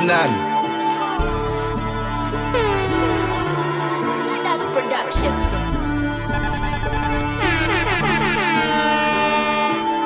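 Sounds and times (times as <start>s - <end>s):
dj mix music: 2.6s - 3.5s
horn-like downward pitch sweep: 2.6s - 3.7s.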